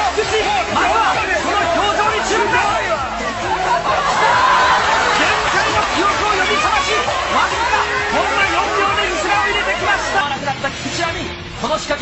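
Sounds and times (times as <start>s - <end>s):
babble of voices: 0.0s - 10.9s.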